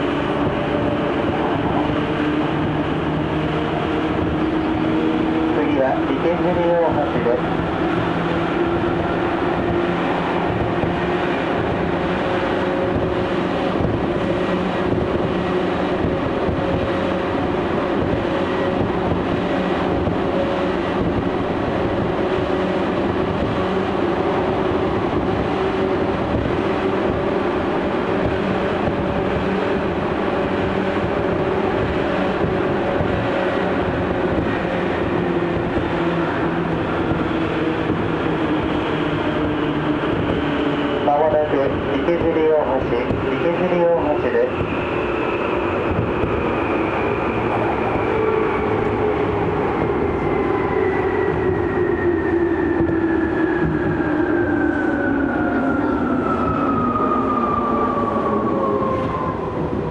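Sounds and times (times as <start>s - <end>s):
train motor hum: 0.0s - 44.8s
train wheels rumbling on rail: 0.0s - 59.9s.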